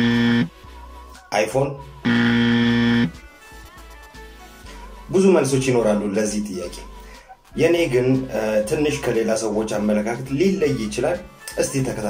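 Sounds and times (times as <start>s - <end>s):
harsh wrong answer buzzer: 0.0s - 0.5s, 2.1s - 3.2s.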